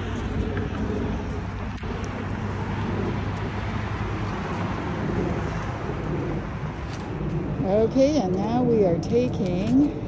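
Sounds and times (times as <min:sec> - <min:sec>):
outdoor noise: 0:00.0 - 0:10.0
road traffic rumble: 0:00.0 - 0:10.0.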